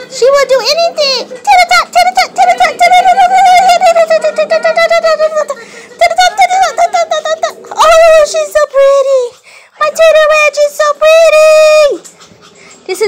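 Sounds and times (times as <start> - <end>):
dog howling: 0.0 - 12.3.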